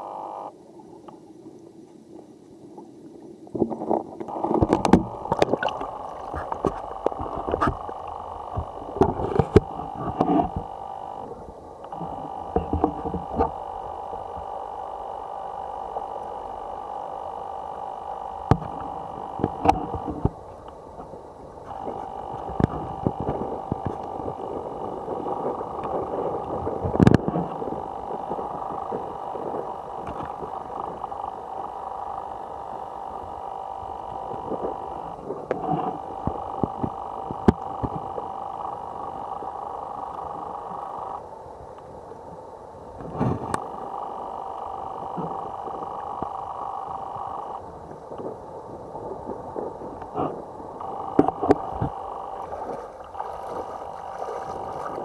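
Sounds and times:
machine hum: 0:00.0 - 0:00.6, 0:04.2 - 0:55.0.

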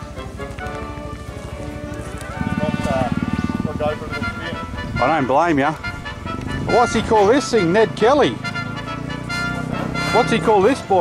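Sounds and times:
background music: 0:00.0 - 0:11.0
voices: 0:00.0 - 0:11.0
fast even pulsing: 0:00.9 - 0:10.9.

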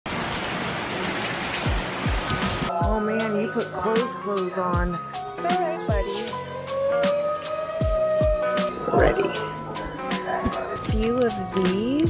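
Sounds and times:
heavy rain pouring: 0:00.1 - 0:12.0
deep bass beats: 0:04.8 - 0:12.0.

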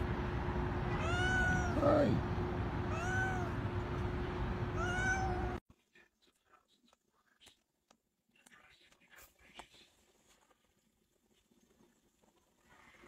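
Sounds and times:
background hiss and hum: 0:00.0 - 0:07.6
cat meowing: 0:00.8 - 0:02.2, 0:02.9 - 0:03.6, 0:04.7 - 0:05.6.

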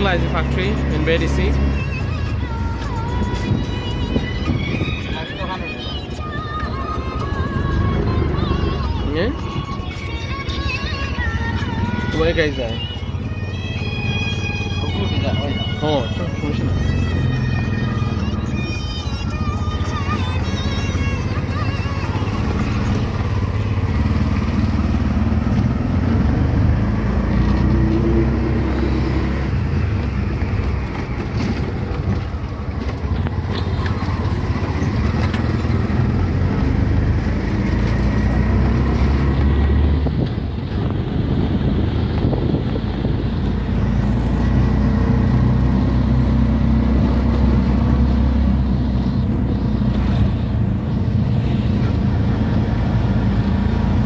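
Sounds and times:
auto-rickshaw engine running: 0:00.0 - 0:54.0
road rumble: 0:00.0 - 0:54.0.

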